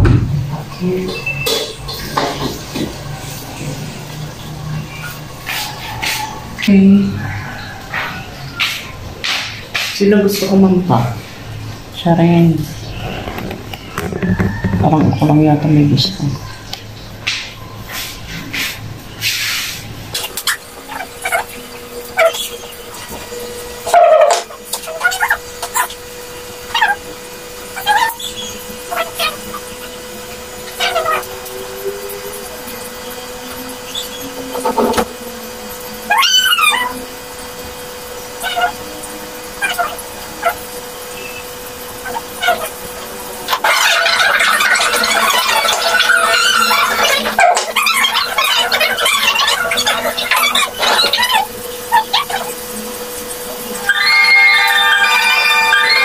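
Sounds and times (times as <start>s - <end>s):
television sound: 0.0s - 56.0s
yelping animal cries: 20.5s - 22.6s, 23.8s - 26.0s, 26.6s - 29.9s, 30.7s - 31.4s, 36.0s - 37.1s, 38.4s - 40.7s, 42.0s - 42.8s, 43.5s - 52.6s, 53.8s - 56.0s.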